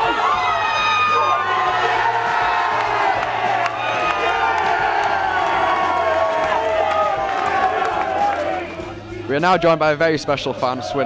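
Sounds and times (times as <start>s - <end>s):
background music with low bass: 0.0s - 11.0s
crowd cheering and shouting: 0.0s - 11.0s.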